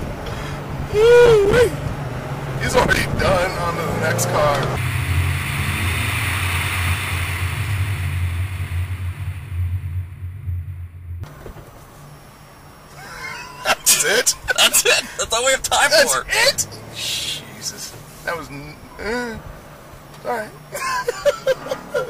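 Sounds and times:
wind hiss: 0.0 - 12.9
car engine running: 0.0 - 13.0, 13.9 - 20.7.

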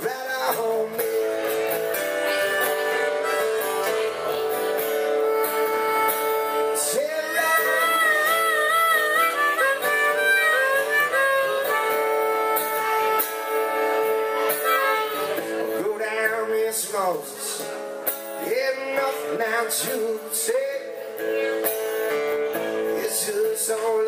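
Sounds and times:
acoustic guitars strumming: 0.0 - 24.0
harmonica solo: 1.9 - 15.7.

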